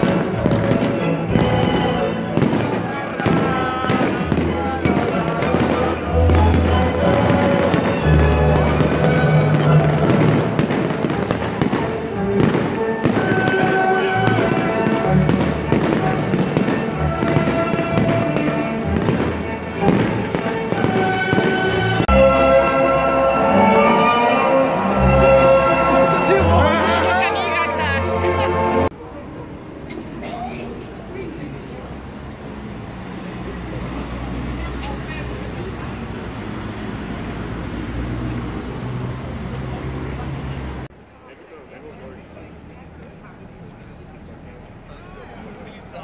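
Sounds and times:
fireworks bangs: 0:00.0 - 0:22.3
loud music: 0:00.0 - 0:28.9
crowd voices: 0:00.0 - 0:46.0.

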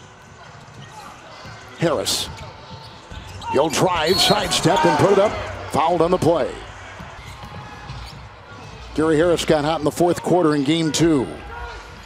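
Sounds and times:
basketball arena background noise: 0:00.0 - 0:12.0.

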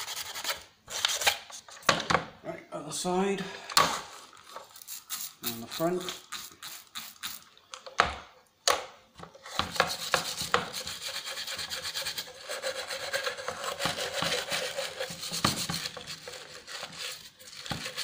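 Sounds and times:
scouring pad scrubbing plastic: 0:09.7 - 0:18.0.

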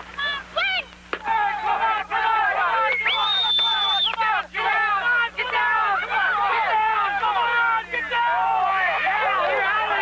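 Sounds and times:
people shouting and cheering: 0:00.2 - 0:10.0.

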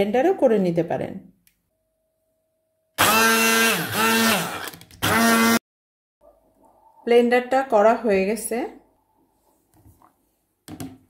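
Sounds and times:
stick blender motor whining: 0:03.0 - 0:05.6.

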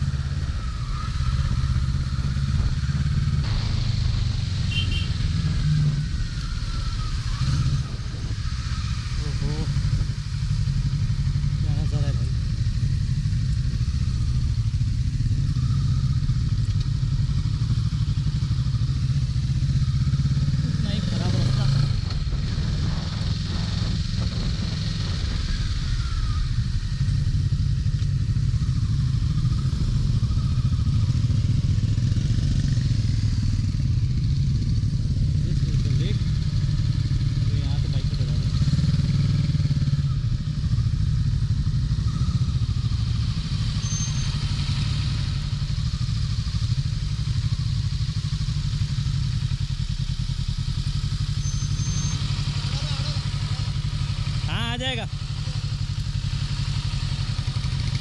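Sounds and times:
motorcycle engine running: 0:00.0 - 0:58.0
wind noise on microphone: 0:04.9 - 0:10.3, 0:21.6 - 0:27.0.

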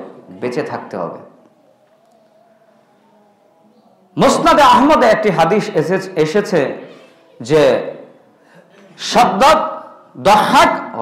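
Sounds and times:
man speaking into a microphone: 0:04.2 - 0:06.8, 0:07.4 - 0:08.0, 0:09.0 - 0:11.0.

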